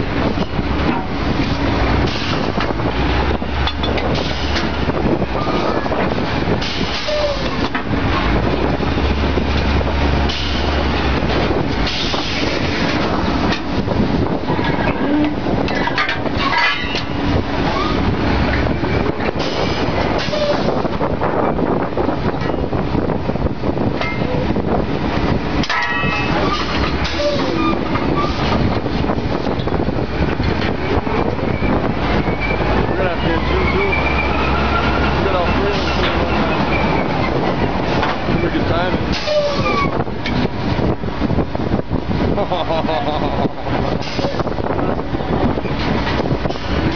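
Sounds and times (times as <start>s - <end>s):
sharp metal knocks: 25.6s - 28.8s.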